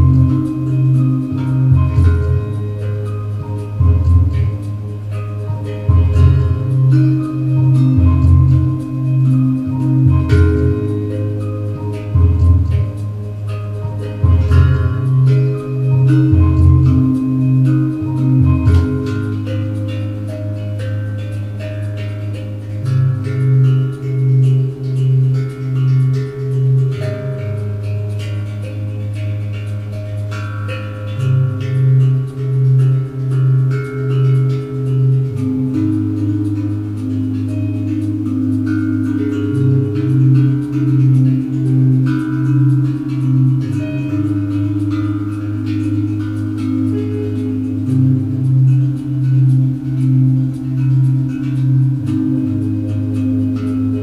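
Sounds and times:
pulsing synthesizer bass: 0.0s - 54.0s
tank drum melodic notes: 0.0s - 54.0s.

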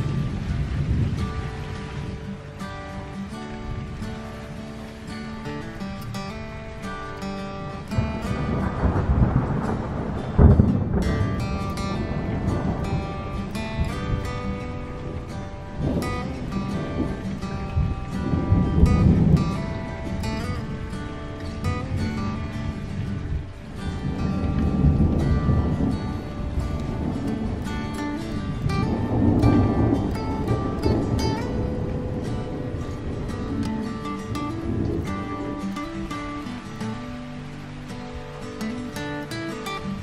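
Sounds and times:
plucked guitar music: 0.0s - 40.0s.

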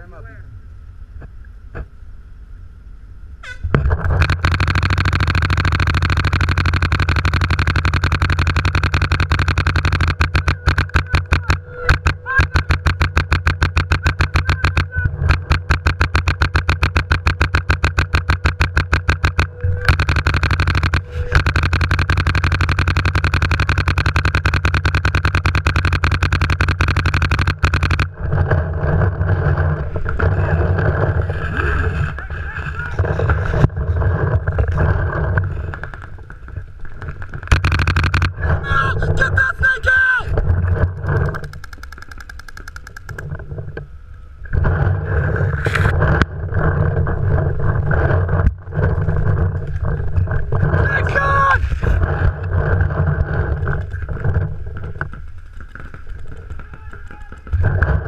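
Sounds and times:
outdoor field noise: 0.0s - 58.0s
paintball marker rapid firing: 3.8s - 28.6s, 37.2s - 38.6s, 41.0s - 43.2s, 55.4s - 58.0s.

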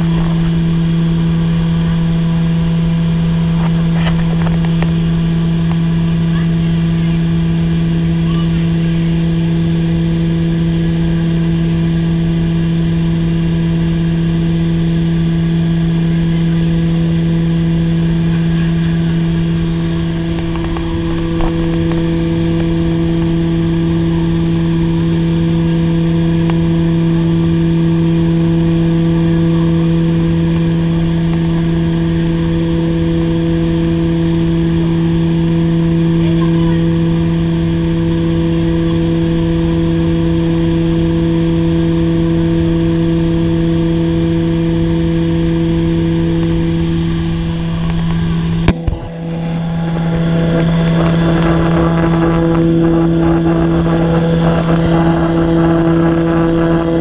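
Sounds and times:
turboprop engines droning in cabin: 0.0s - 57.0s.

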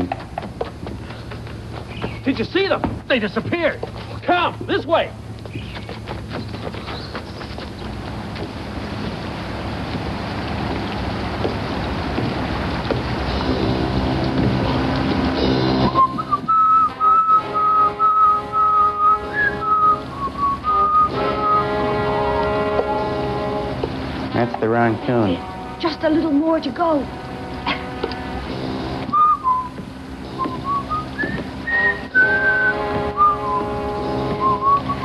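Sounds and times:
backing music: 12.2s - 35.0s
whistled tune: 15.6s - 21.8s, 29.1s - 35.0s.

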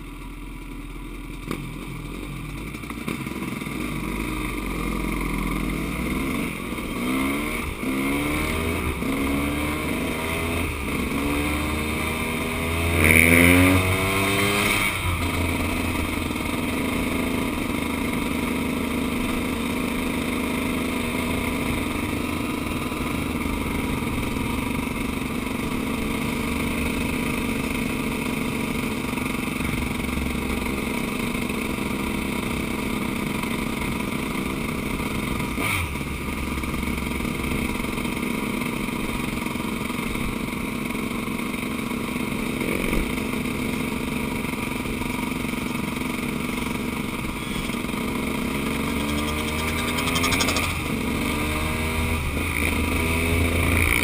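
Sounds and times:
dirt bike engine revving: 3.1s - 38.1s, 42.2s - 54.0s.

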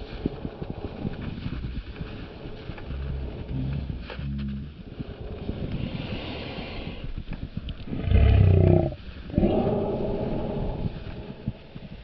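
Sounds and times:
footsteps crunching in snow: 0.0s - 12.0s.

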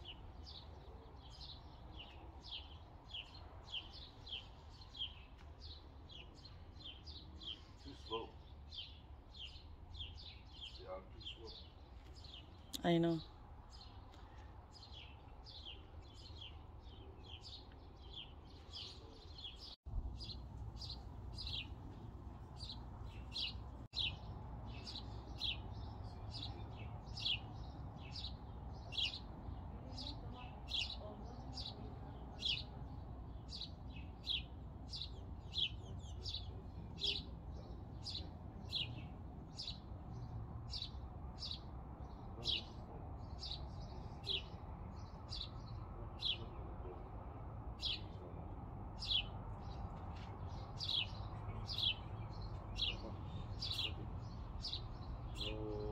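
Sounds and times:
bird chirping: 0.0s - 48.4s, 49.0s - 55.9s.

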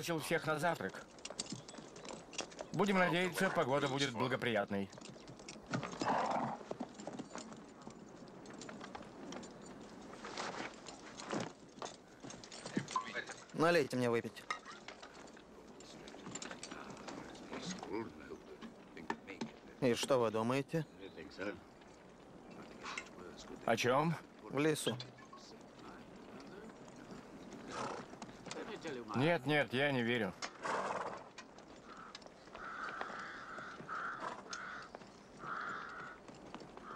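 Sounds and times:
horse hooves clip-clopping: 0.0s - 36.9s.

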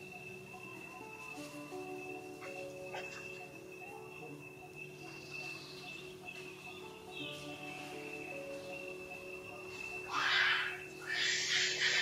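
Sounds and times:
background music: 0.0s - 12.0s
macaque calling harshly: 10.1s - 12.0s.

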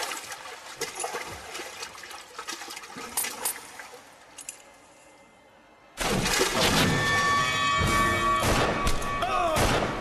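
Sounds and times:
water running and splashing: 0.0s - 4.2s.

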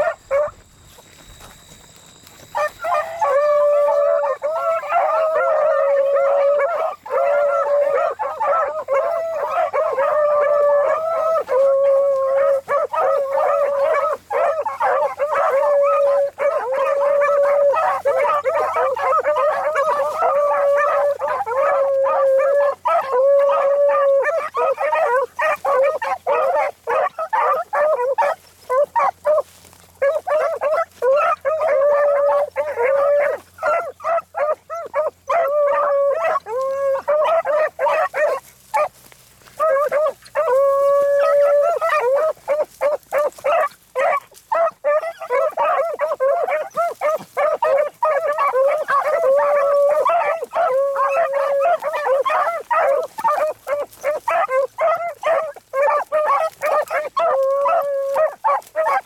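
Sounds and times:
beagles baying and barking: 0.0s - 59.0s.

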